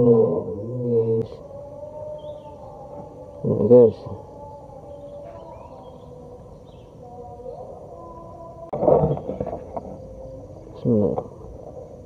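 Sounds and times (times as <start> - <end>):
low chanting voice: 0.0 - 12.0
quiet steady hum: 0.0 - 12.0
faint high chirp: 0.6 - 10.9.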